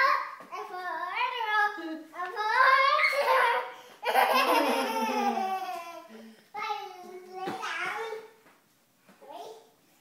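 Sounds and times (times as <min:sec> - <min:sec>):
child laughing loudly: 0:03.1 - 0:06.1.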